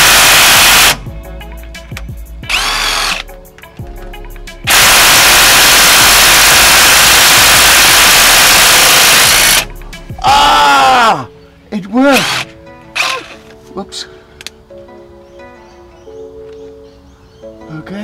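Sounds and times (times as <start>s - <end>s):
cordless drill running: 0.0s - 1.0s, 2.5s - 3.2s, 4.7s - 9.6s, 12.2s - 13.4s.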